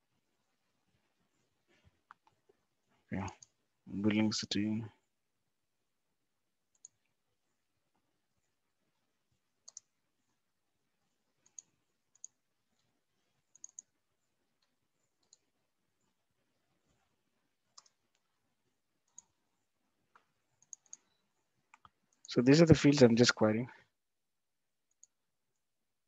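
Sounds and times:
mouse and keyboard clicks: 0:09.6 - 0:09.9, 0:13.5 - 0:13.9, 0:14.6 - 0:15.5, 0:20.2 - 0:22.3.

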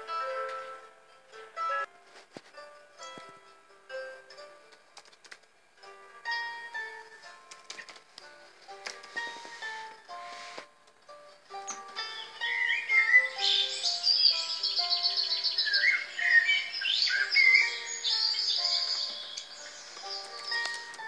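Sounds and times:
background music with held notes: 0:00.0 - 0:21.0
blackbird song: 0:11.6 - 0:21.0.

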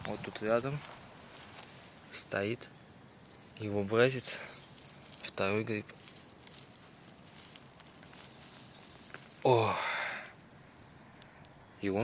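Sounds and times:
soft crackles: 0:00.0 - 0:11.6
grass rustling: 0:00.0 - 0:12.0.

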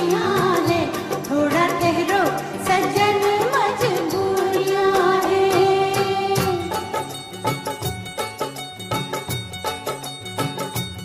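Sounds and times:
film song singing with accompaniment: 0:00.0 - 0:08.6.

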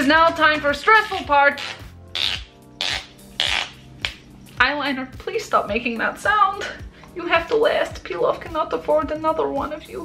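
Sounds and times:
faint background music: 0:00.0 - 0:10.0
eyeliner making noisy sounds: 0:01.5 - 0:03.8.

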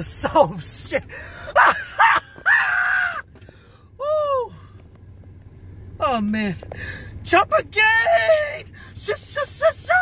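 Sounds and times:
man laughing hysterically: 0:01.5 - 0:03.2.

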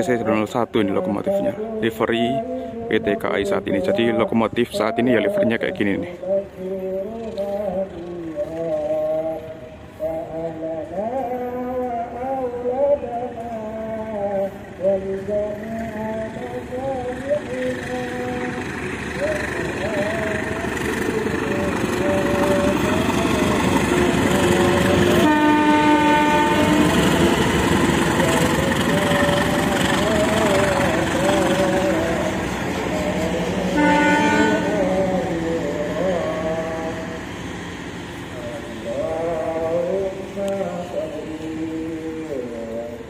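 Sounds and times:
diesel locomotive passing: 0:00.0 - 0:43.0
multi-tone train horn: 0:20.1 - 0:32.4, 0:33.0 - 0:37.2.

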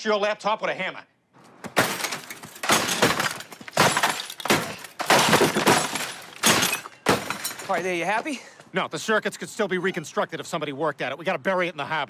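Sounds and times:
hammer smashing laptop: 0:01.7 - 0:07.9
breaking pieces clattering: 0:01.7 - 0:08.3.

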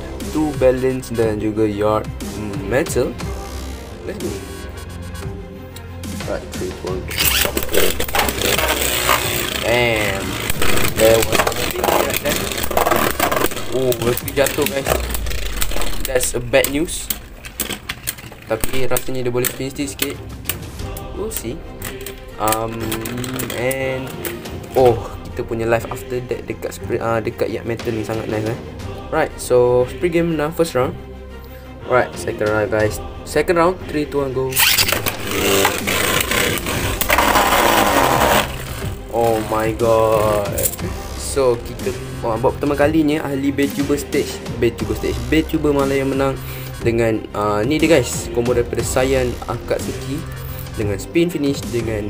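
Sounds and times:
spinning tops whirring: 0:07.1 - 0:19.6, 0:34.6 - 0:40.8
rapid small clicks: 0:21.8 - 0:24.8.

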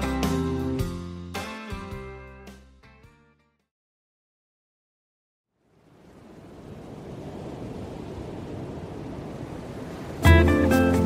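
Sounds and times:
surf-like rushing noise: 0:05.7 - 0:11.0.

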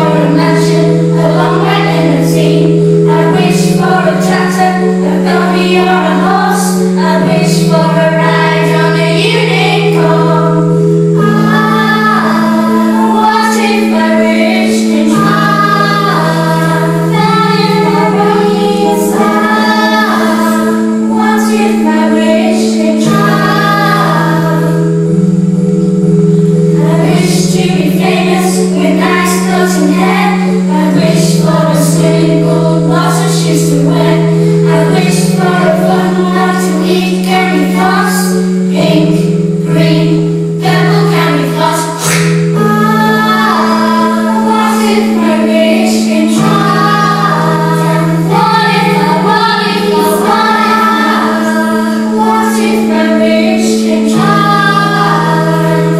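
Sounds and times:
children's choir singing: 0:00.0 - 0:55.9
long held low notes: 0:00.0 - 0:55.9
sustained instrumental accompaniment: 0:00.0 - 0:55.9.

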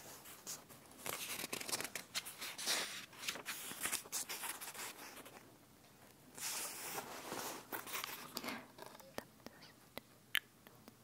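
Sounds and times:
paper pages rustling: 0:00.0 - 0:05.4, 0:06.4 - 0:09.0.

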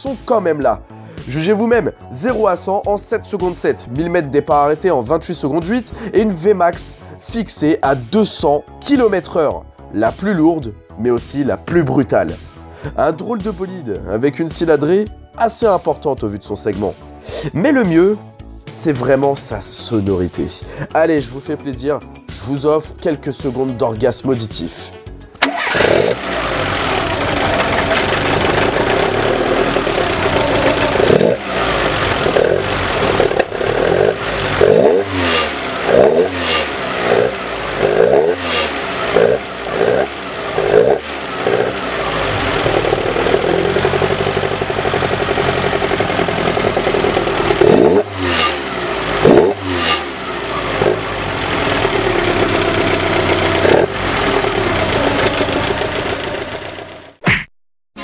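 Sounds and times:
car engine revving and idling: 0:25.4 - 0:57.2.

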